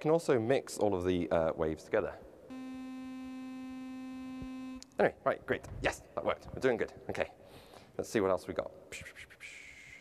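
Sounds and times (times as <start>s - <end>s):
synthesizer steady note: 2.5s - 4.8s.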